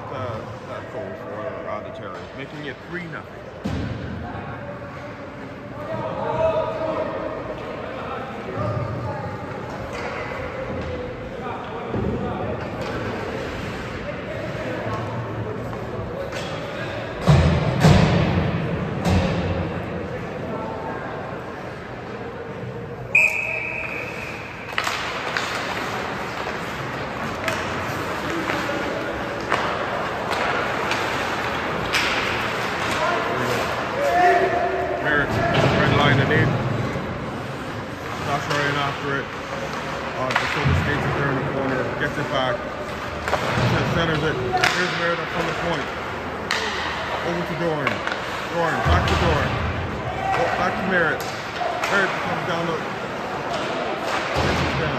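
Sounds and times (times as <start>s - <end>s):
players and crowd voices: 0.0s - 54.9s
puck and sticks hitting boards: 14.9s - 19.7s, 24.4s - 34.6s, 35.2s - 54.9s
short high whistle blast: 23.1s - 24.4s.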